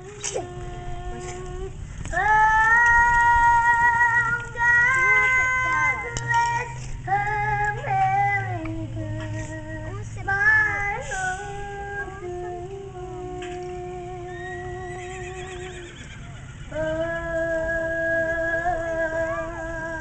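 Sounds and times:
girl singing: 0.0 - 15.6, 16.7 - 20.0.

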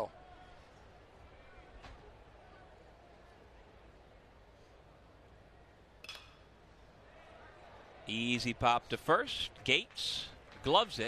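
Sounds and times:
stadium crowd ambience: 0.0 - 11.0
metal bat hitting ball: 6.0 - 6.5.

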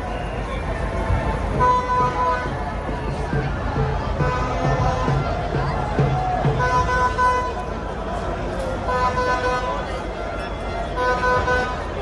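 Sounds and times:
large crowd noise: 0.0 - 12.0
horn blasts: 1.3 - 2.8, 4.1 - 5.5, 6.4 - 7.8, 8.8 - 10.1, 10.8 - 12.0.

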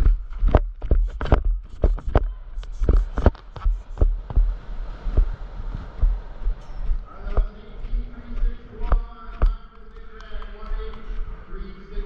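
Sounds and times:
sharp knocks and thumps: 0.0 - 10.2
low rumble: 0.0 - 12.0.

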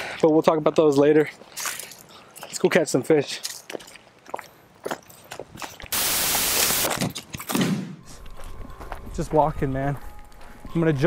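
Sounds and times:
footsteps crunching on gravel: 0.2 - 11.0.

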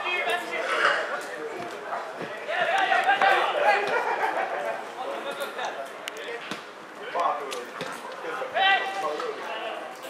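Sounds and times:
players shouting: 2.2 - 4.2.

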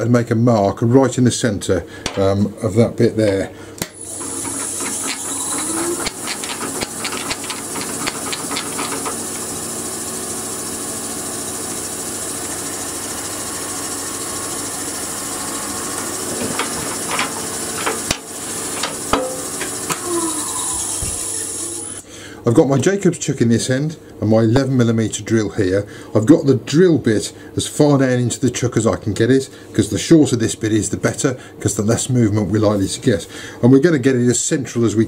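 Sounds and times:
wood lathe motor hum and whine: 4.0 - 22.1.

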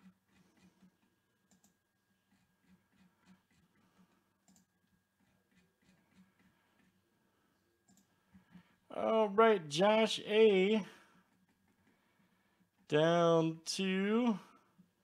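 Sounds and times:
faint computer mouse clicks: 1.5 - 1.8, 4.4 - 4.7, 7.8 - 8.1.

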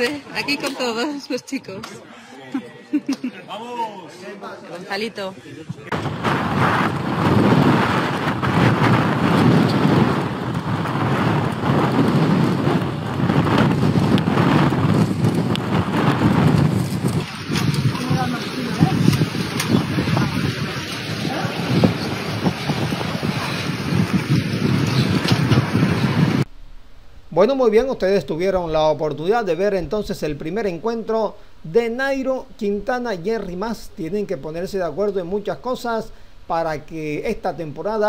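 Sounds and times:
wind buffeting microphone: 5.7 - 26.5.

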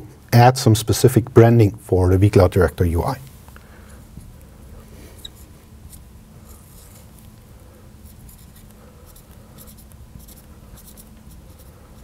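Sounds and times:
steady low hum: 0.0 - 12.0
marker pen writing on glass: 8.1 - 12.0.

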